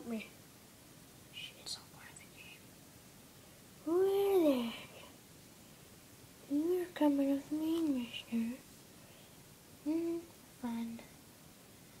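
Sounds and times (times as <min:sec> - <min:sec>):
faint breathy whispering: 0:01.3 - 0:02.7, 0:04.4 - 0:05.2.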